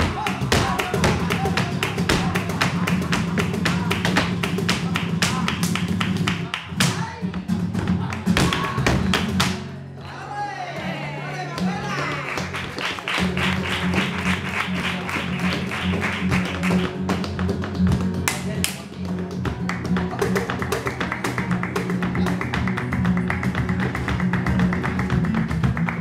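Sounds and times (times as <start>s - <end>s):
hand-clapping: 0.0s - 7.1s, 8.0s - 9.7s, 11.3s - 26.0s
heeled shoes striking stage: 0.0s - 9.7s
flamenco guitar: 0.0s - 26.0s.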